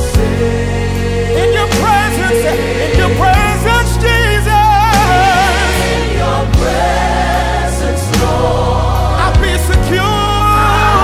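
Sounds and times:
band with sustained bass: 0.0 - 11.0
choir singing in harmony: 0.0 - 11.0
lead voice singing with vibrato: 0.0 - 11.0.

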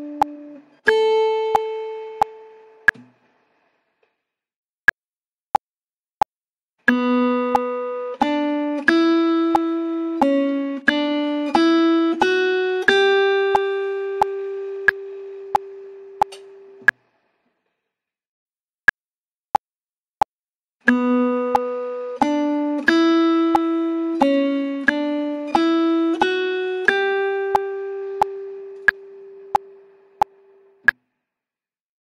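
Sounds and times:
metronome ticking: 0.0 - 3.0, 6.9 - 17.0, 20.9 - 30.4.

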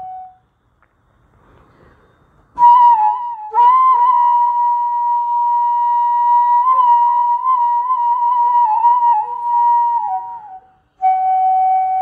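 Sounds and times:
solo flute playing: 0.0 - 0.4, 2.6 - 12.0
faint breathy hiss: 0.4 - 2.6.

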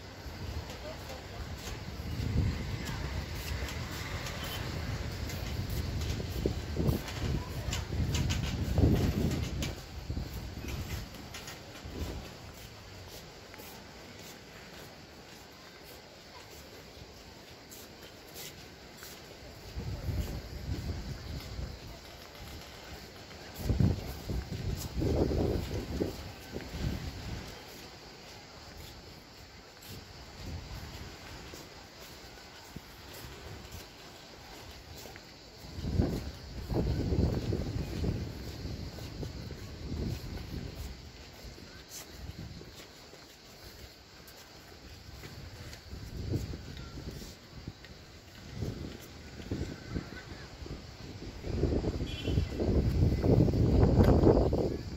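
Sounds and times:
wind buffeting microphone: 0.0 - 13.5, 19.3 - 42.8, 43.6 - 54.9
faint outdoor background: 0.0 - 54.9.

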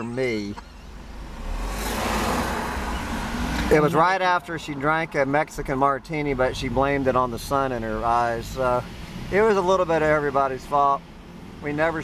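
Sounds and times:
road noise: 0.0 - 12.0
vehicle engine rumble: 0.0 - 12.0.

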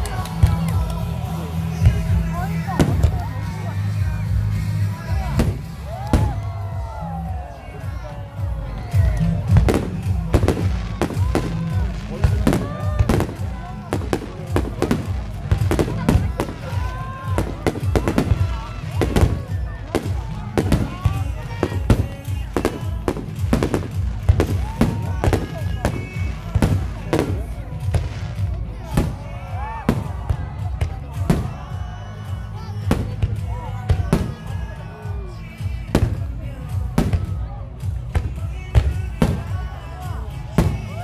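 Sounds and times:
fireworks bangs and crackles: 0.0 - 41.0
loud background music: 0.0 - 41.0.

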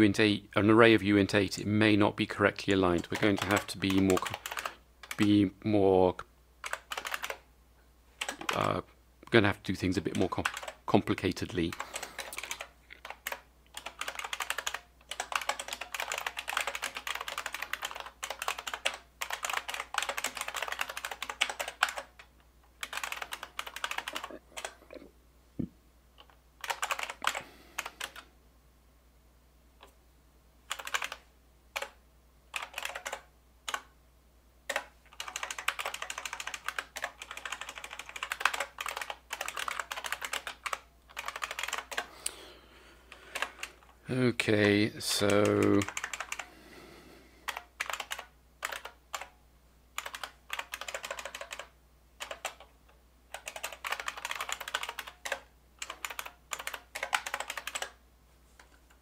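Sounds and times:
typing on computer keyboard: 2.9 - 5.4, 6.6 - 7.4, 8.2 - 8.7, 10.1 - 10.8, 11.7 - 24.8, 26.2 - 28.3, 30.7 - 31.2, 31.8 - 33.9, 34.7 - 42.1, 43.1 - 44.0, 45.2 - 46.5, 47.4 - 49.4, 50.0 - 52.7, 53.3 - 58.0.

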